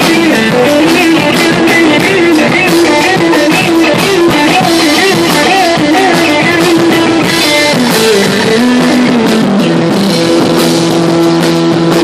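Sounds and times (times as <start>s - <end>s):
drums: 0.0s - 12.0s
electric guitar: 0.0s - 12.0s
heavy rock band playing: 0.0s - 12.0s.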